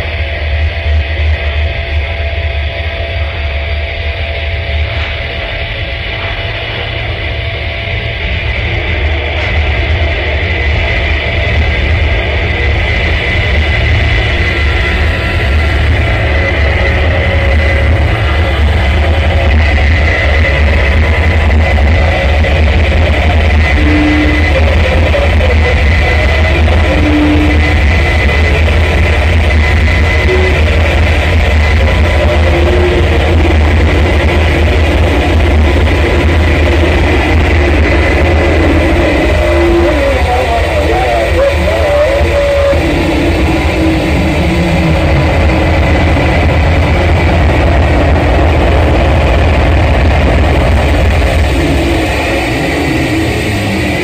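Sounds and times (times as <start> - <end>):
distorted noise music: 0.0 - 54.0
heavy low drone: 0.0 - 54.0.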